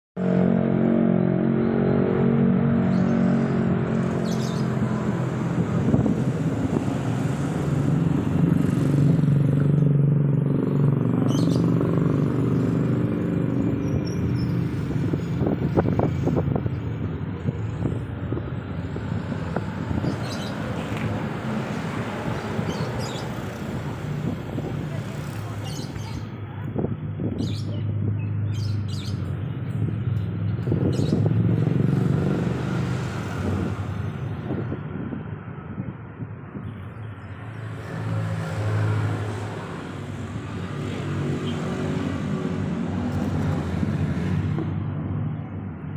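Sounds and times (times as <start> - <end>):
steady engine hum: 0.2 - 45.9.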